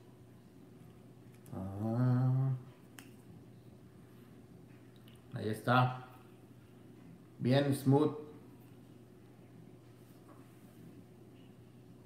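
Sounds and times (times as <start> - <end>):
man humming: 1.5 - 2.7.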